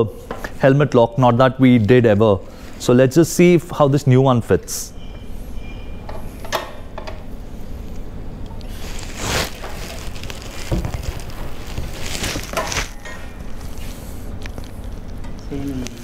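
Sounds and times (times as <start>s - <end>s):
low background noise: 0.0s - 16.0s.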